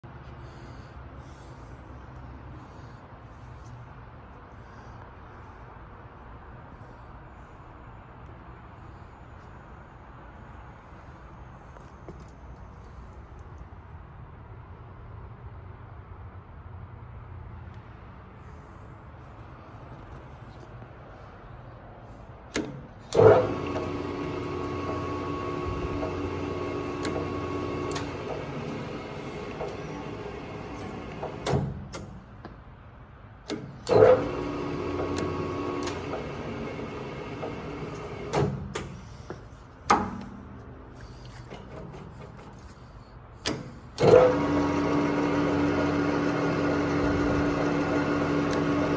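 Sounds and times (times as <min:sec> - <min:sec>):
metal lathe humming: 0:23.1 - 0:31.5, 0:33.8 - 0:38.3, 0:44.0 - 0:48.9.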